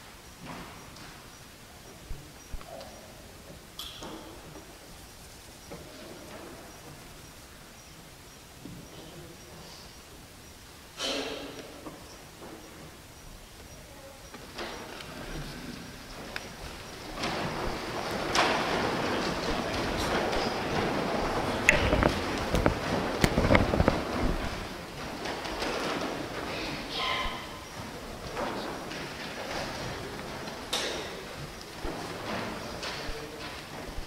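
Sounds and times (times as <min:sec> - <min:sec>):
low murmuring voices: 0:01.6 - 0:34.0
shuffling: 0:11.9 - 0:34.0.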